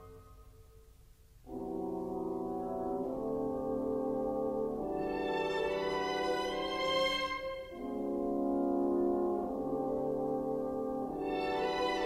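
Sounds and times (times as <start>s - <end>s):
orchestra sustained chord: 1.5s - 12.0s.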